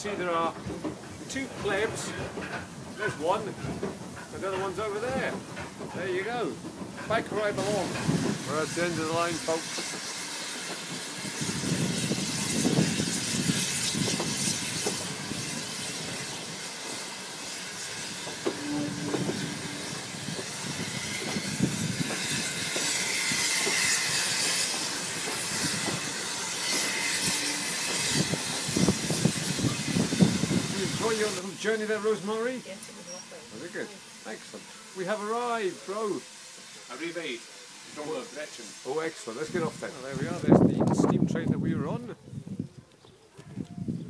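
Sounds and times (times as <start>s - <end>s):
train carriage rumbling and rattling: 0.0s - 37.1s, 38.6s - 42.6s.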